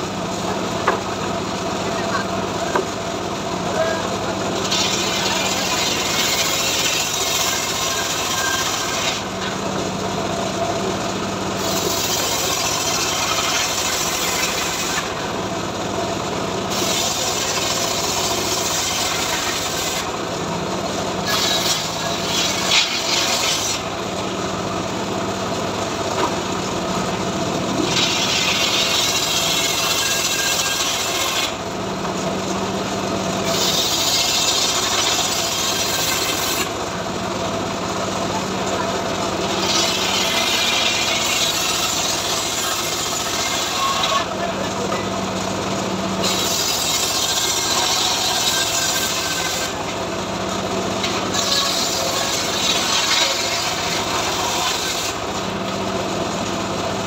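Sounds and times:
saw motor hum: 0:00.0 - 0:57.0
circular saw cutting wood: 0:03.6 - 0:09.8, 0:10.7 - 0:26.4, 0:27.2 - 0:31.8, 0:33.4 - 0:37.6, 0:38.4 - 0:45.0, 0:46.0 - 0:56.0.

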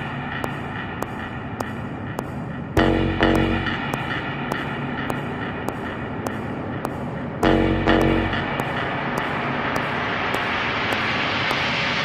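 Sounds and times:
soft high ticks: 0:00.0 - 0:11.8.

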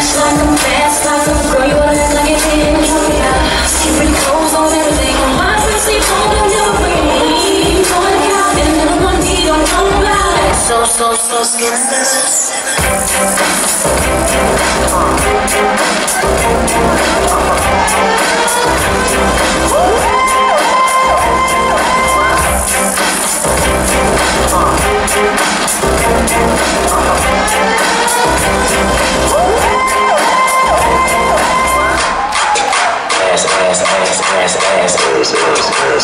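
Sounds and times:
crowd cheering: 0:00.0 - 0:36.0
hip hop music with heavy bass: 0:00.0 - 0:36.0.

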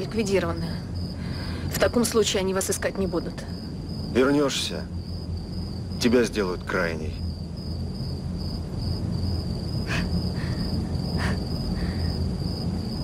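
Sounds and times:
crickets chirping: 0:00.0 - 0:13.0
low steady rumble: 0:00.0 - 0:13.0.

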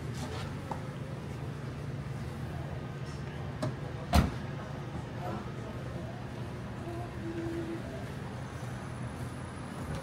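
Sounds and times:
low rumble of car and street: 0:00.0 - 0:10.0.

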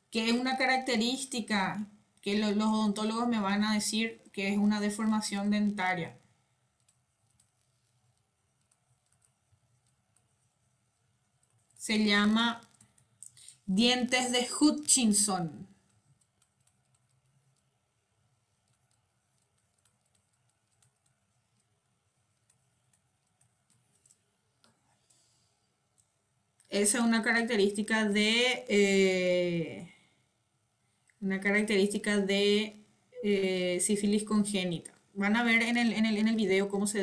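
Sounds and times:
person speaking: 0:00.1 - 0:06.2, 0:11.8 - 0:15.7, 0:26.7 - 0:29.9, 0:31.2 - 0:37.0
computer keyboard clicks: 0:18.6 - 0:21.2, 0:22.4 - 0:24.2.

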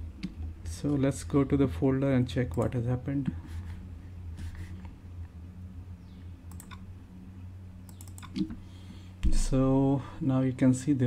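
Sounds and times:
steady low hum: 0:00.0 - 0:11.0
computer mouse clicks: 0:06.5 - 0:06.9, 0:07.8 - 0:08.6.

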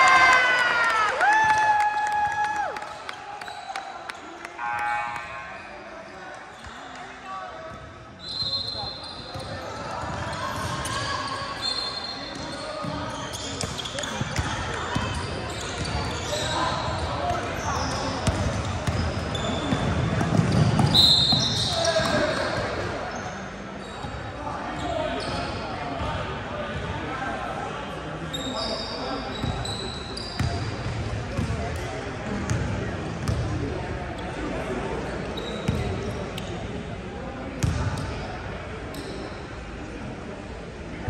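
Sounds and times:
sneakers squeaking on floor: 0:04.6 - 0:26.9, 0:28.2 - 0:36.9, 0:37.6 - 0:39.6.

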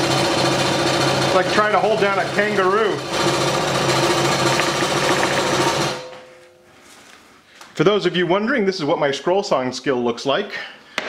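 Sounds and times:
scroll saw cutting: 0:03.0 - 0:06.0.

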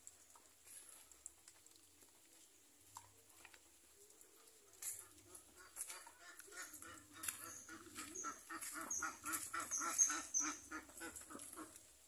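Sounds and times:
birds calling rapidly: 0:05.1 - 0:11.8
high bird chirps: 0:07.4 - 0:10.7.

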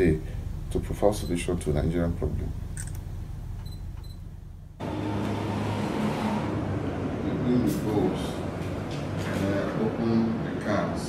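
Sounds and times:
low hum: 0:00.0 - 0:09.2.

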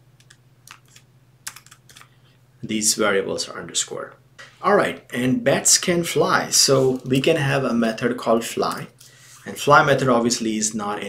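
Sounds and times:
computer keyboard typing: 0:00.2 - 0:02.1.

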